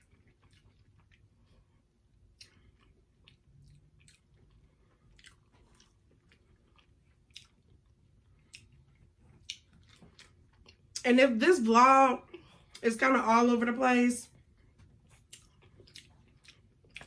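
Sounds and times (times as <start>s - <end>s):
person chewing a snack: 0.0s - 11.0s, 14.3s - 17.0s.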